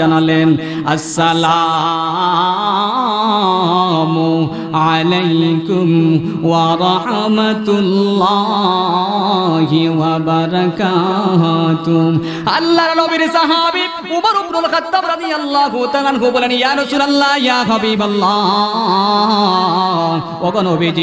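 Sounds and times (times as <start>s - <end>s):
man chanting melodically: 0.0s - 21.0s.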